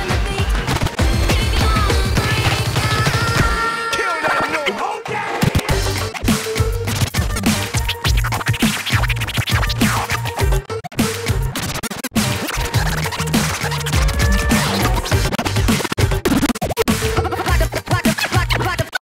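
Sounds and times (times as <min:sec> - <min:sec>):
electronic bass line and beat: 0:00.0 - 0:03.6, 0:05.4 - 0:19.0
vinyl record scratching: 0:00.1 - 0:19.0.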